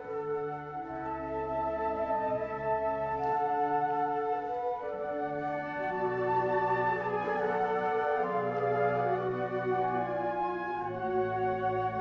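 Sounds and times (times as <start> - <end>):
flute choir playing chords: 0.0 - 12.0.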